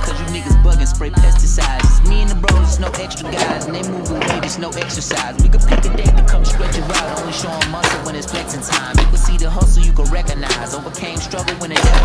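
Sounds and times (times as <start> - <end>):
hip-hop music: 0.0 - 12.0
skateboard wheels rolling on concrete: 1.2 - 12.0.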